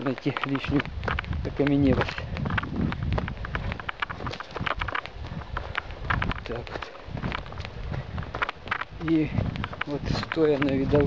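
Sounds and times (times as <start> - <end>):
camera jostling rumble: 0.0 - 11.0
footsteps on dry leaves: 0.0 - 11.0.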